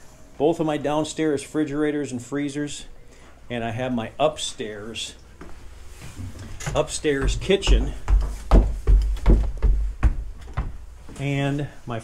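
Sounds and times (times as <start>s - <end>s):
short knocks and thumps: 6.2s - 10.8s.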